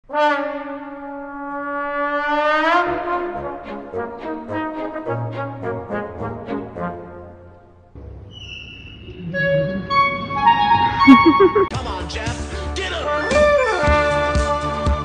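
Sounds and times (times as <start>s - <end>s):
orchestra playing: 10.4s - 11.7s.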